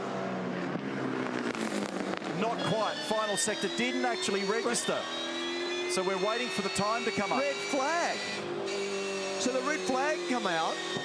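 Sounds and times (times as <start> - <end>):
race car engine running: 0.0 - 11.0.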